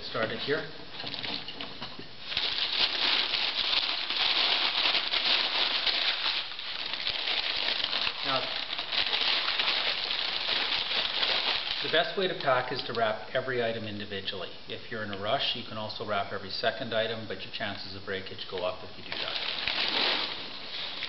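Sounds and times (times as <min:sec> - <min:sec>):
paper crinkling and rustling: 0:02.3 - 0:12.6, 0:18.6 - 0:21.0.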